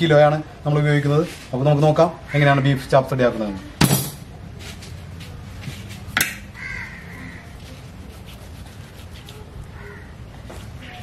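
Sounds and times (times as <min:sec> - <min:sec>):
crow cawing: 0:06.5 - 0:07.5, 0:09.7 - 0:10.2.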